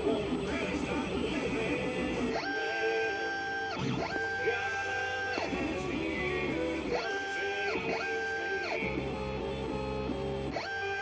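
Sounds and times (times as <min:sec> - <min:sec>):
guitar-driven music: 0:00.0 - 0:11.0
stepper motors whining: 0:00.0 - 0:11.0.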